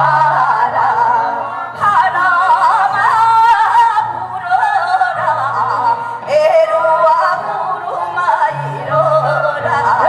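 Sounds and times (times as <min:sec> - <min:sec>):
women singing through microphones: 0:00.0 - 0:10.0.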